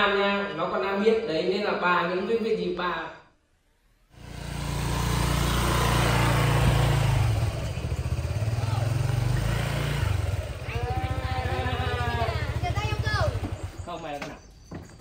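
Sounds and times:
motor scooter engine: 4.2 - 14.2.

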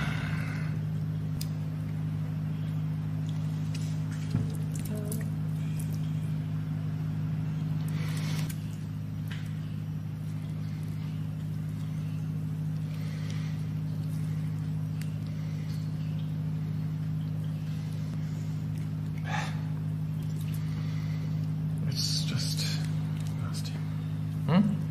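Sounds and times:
low machine hum: 0.0 - 24.9.

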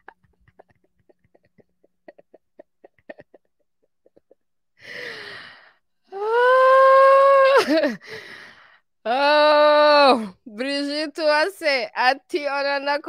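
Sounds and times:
woman laughing: 0.0 - 4.5, 7.4 - 8.0
breathy gasp: 4.8 - 5.8, 8.0 - 8.8
woman's long held cry: 6.1 - 8.0.

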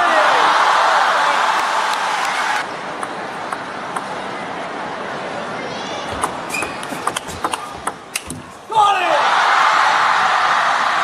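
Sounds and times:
loud shout: 0.0 - 2.6, 8.7 - 11.0
crowd cheering: 0.0 - 4.9, 8.7 - 11.0
ping pong ball clicks: 6.2 - 8.4.

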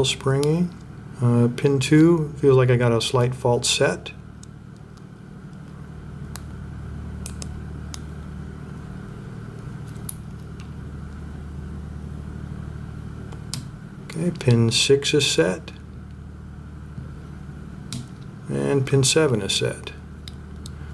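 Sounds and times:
generator humming: 0.0 - 20.9.

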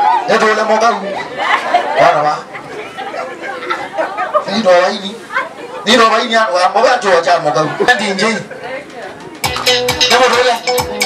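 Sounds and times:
people talking over one another: 0.0 - 10.8.

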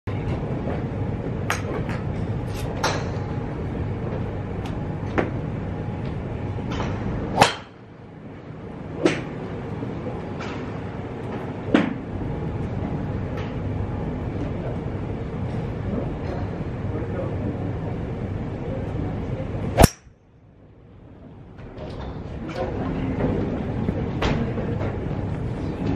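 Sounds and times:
steady background hum: 0.1 - 25.9
golf club striking ball: 7.4 - 7.8, 19.8 - 20.1.

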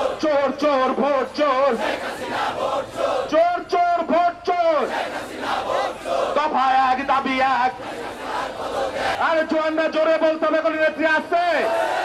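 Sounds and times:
crowd shouting slogans: 0.0 - 9.5, 11.5 - 12.0.

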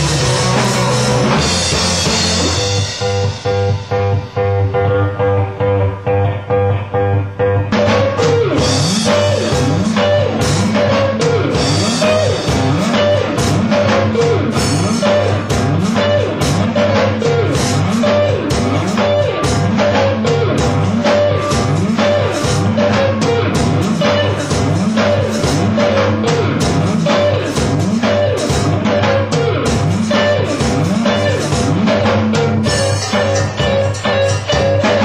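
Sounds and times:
drums and bass: 0.0 - 35.0
repeated guitar figure: 0.0 - 35.0
rock band playing: 0.0 - 35.0.

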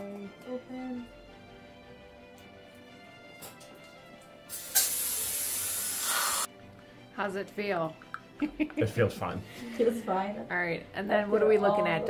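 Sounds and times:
soft background music: 0.0 - 12.0
air-water syringe hissing: 4.5 - 6.5.

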